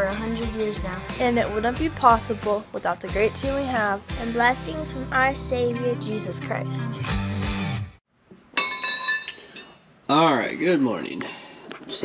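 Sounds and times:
metal clinking and ringing: 0:08.6 - 0:10.1.

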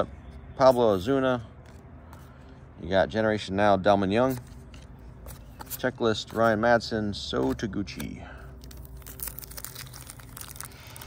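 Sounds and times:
foil wrappers and cards rustling: 0:04.2 - 0:11.0.

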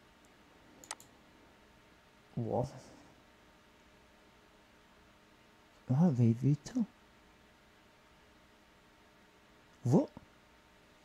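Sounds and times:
computer mouse clicks: 0:00.2 - 0:01.1.

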